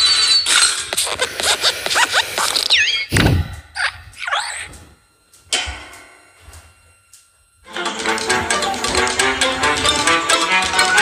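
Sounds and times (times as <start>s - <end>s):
cartoon squeaks: 2.4s - 3.1s, 3.8s - 4.7s.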